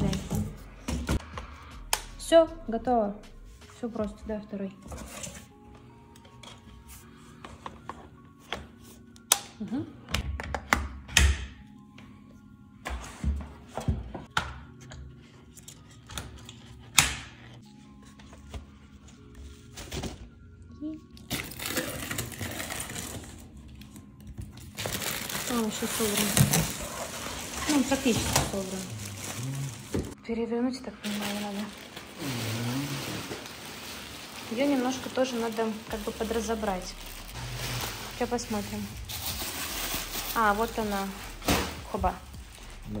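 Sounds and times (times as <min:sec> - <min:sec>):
plastic packaging rustling: 0:21.2 - 0:24.0, 0:24.6 - 0:30.2, 0:31.0 - 0:42.8.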